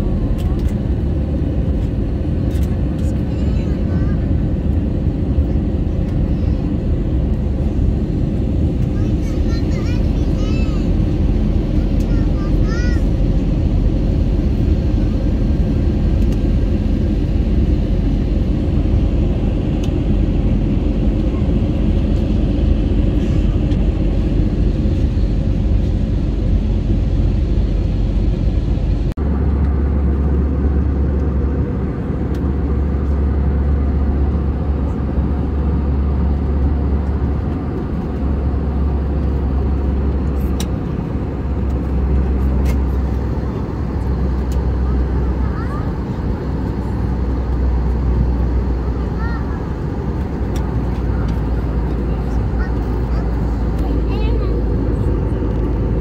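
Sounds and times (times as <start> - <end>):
airliner cabin engine rumble: 0.0 - 56.0.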